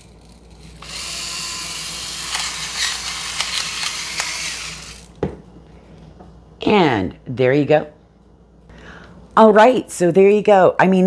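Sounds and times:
electric pepper grinder whirring: 0.0 - 5.2.

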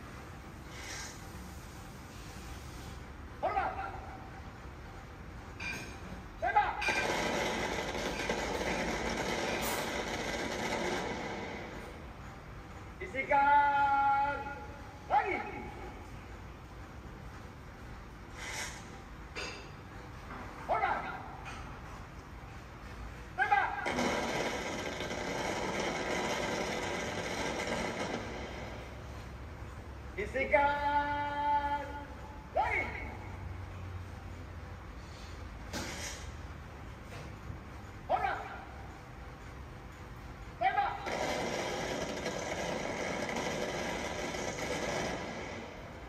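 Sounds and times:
person shouting a command: 3.4 - 4.2, 6.4 - 6.8, 13.1 - 15.8, 20.7 - 21.4, 23.4 - 23.8, 30.2 - 33.2, 38.1 - 38.8, 40.6 - 41.1.

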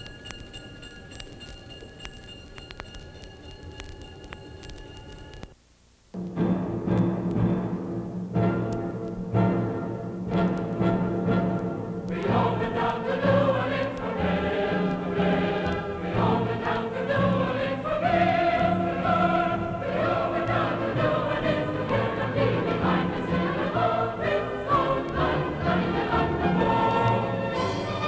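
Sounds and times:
low steady accompaniment: 0.0 - 28.0
choir singing long notes: 10.3 - 28.0.

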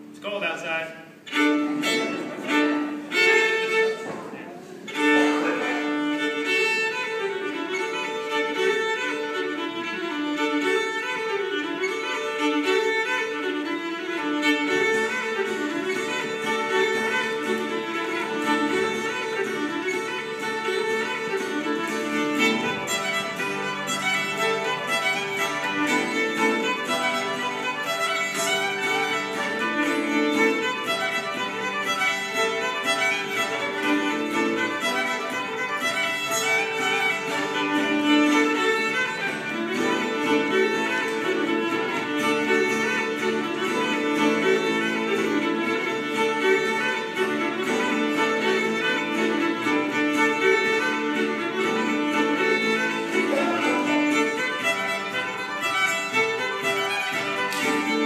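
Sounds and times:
fiddle playing quick melody: 0.0 - 58.0
strummed acoustic guitar: 4.9 - 58.0.

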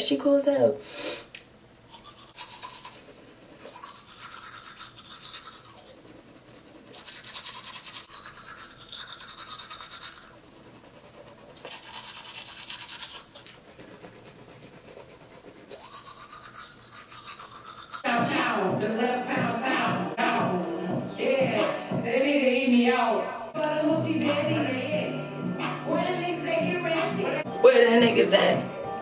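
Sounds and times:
toothbrush scrubbing teeth: 1.9 - 19.0.

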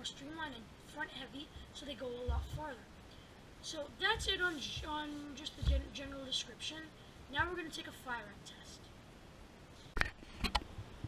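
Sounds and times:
faint room noise: 0.0 - 11.0.

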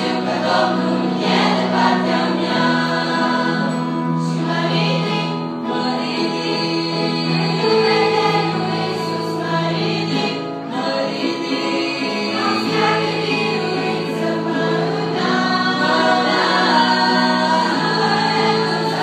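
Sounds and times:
girls' choir singing: 0.0 - 19.0.

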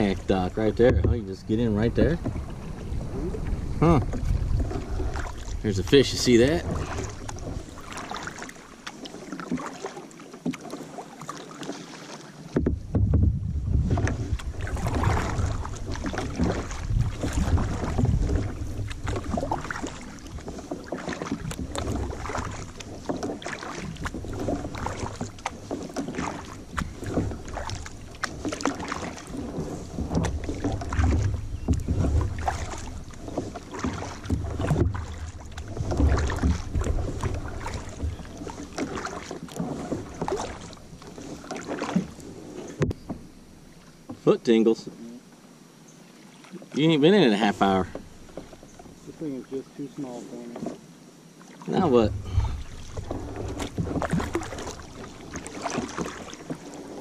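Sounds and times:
wind buffeting microphone: 0.0 - 7.7, 12.6 - 20.5, 51.9 - 54.4
water splashing at paddle: 0.0 - 57.0.

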